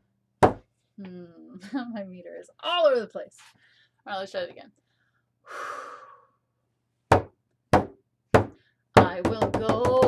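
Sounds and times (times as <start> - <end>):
person breathing: 3.4 - 4.0, 4.8 - 6.5, 8.5 - 8.9.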